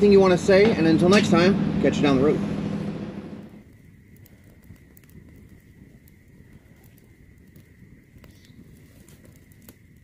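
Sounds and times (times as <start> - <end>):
low steady rumble: 0.0 - 4.2
loud noise: 0.4 - 3.6
campfire crackling and snapping: 2.7 - 10.0.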